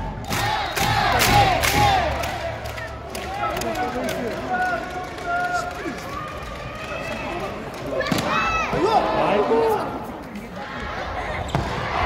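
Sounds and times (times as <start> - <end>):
arena crowd chattering: 0.0 - 12.0.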